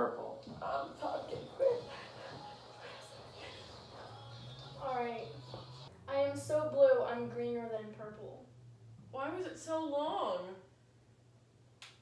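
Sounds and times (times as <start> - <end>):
woman's voice: 0.0 - 2.0, 4.8 - 5.4, 6.1 - 8.4, 9.2 - 10.7.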